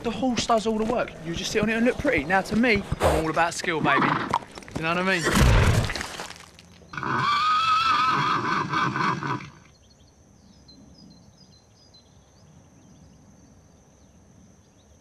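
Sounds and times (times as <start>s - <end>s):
horse whinnying: 3.8s - 4.5s, 6.9s - 9.7s
faint bird chirps: 9.7s - 15.0s.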